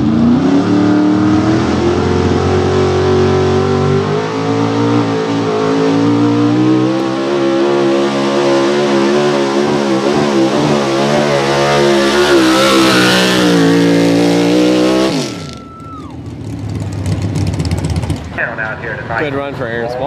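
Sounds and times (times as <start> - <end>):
pickup engine at full throttle: 0.0 - 19.9.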